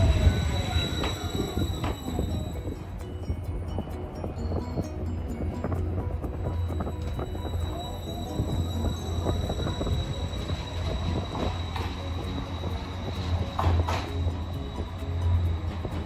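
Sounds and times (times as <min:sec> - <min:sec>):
electric tram hum and whine: 0:00.0 - 0:16.0
wheels clicking on rails: 0:00.0 - 0:16.0.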